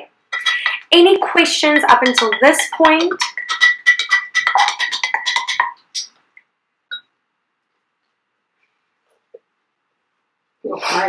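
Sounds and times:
brush clinking in glass jar: 0.3 - 6.2.

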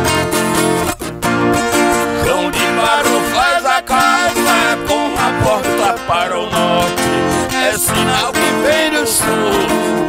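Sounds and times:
acoustic guitar: 0.0 - 10.0
viola caipira plucking: 0.0 - 10.0.

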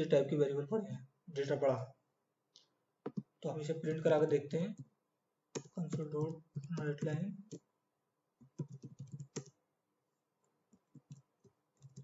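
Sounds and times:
computer keyboard typing: 5.6 - 7.7, 8.4 - 9.6, 10.7 - 12.0.

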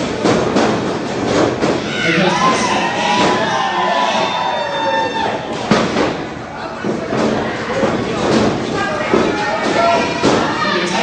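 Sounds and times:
crowd noise in a hall: 0.0 - 11.0.

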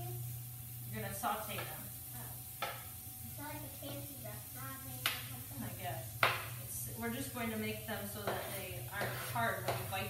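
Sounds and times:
steady low hum: 0.0 - 10.0
spoon knocking on frying pan: 1.5 - 1.8, 2.5 - 3.0, 6.1 - 6.6, 8.1 - 10.0.

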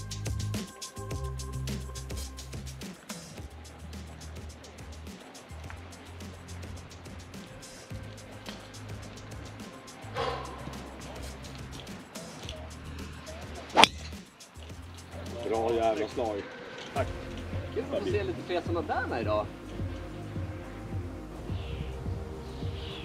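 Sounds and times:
background music: 0.0 - 16.4, 17.0 - 23.0
golf driver striking ball: 13.8 - 14.2.

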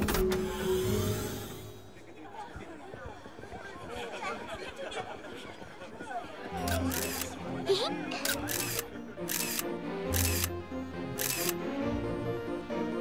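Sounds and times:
film music with sustained notes: 0.0 - 2.0, 6.5 - 13.0.

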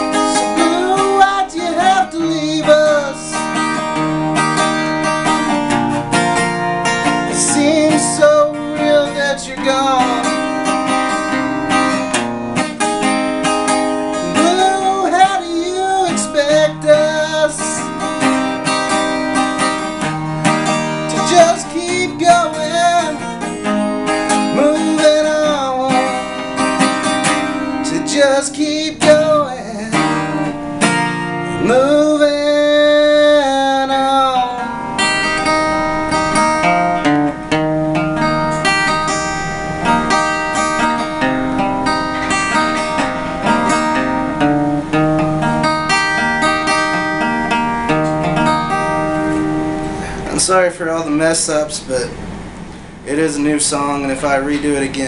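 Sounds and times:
man singing: 0.0 - 3.8, 7.2 - 10.7, 14.1 - 18.3, 21.0 - 27.0, 27.6 - 30.6, 31.5 - 35.1, 53.0 - 55.0
acoustic guitar strumming: 0.0 - 55.0.

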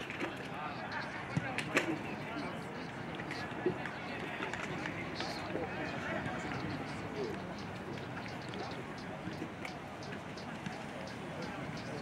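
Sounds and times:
background voices and chatter: 0.0 - 12.0.

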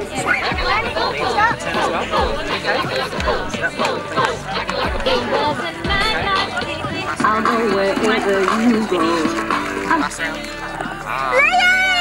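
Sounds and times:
background music: 0.0 - 12.0
children chattering and laughing: 0.0 - 12.0.

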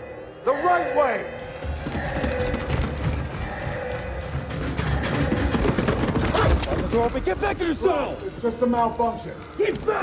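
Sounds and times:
tense film score: 0.0 - 10.0.

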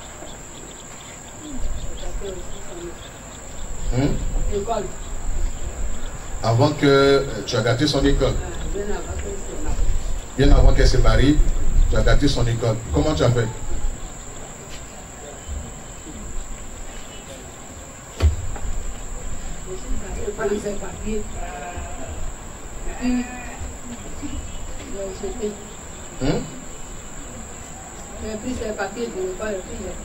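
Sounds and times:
high-pitched whine: 0.0 - 30.0
thump: 18.2 - 19.0
elderly woman murmuring: 19.6 - 26.7.

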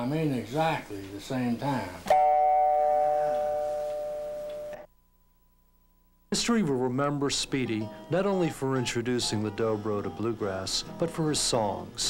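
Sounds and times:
resonator guitar harmonic chime: 2.1 - 4.9.

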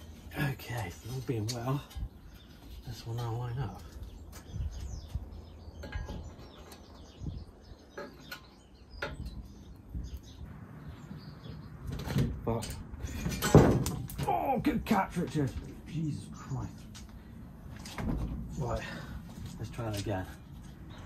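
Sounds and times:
metal bracket knocking and clinking: 5.8 - 6.9.

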